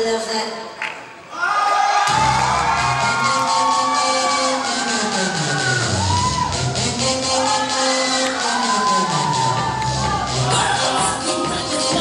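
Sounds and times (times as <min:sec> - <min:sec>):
audience cheering: 0:01.3 - 0:12.0
loud dance music: 0:02.1 - 0:12.0.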